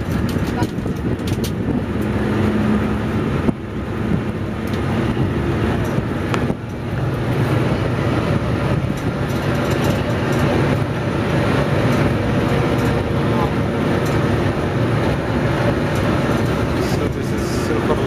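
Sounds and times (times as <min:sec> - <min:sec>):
road and wind noise: 0:00.0 - 0:18.0
tram engine rumble: 0:00.0 - 0:18.0.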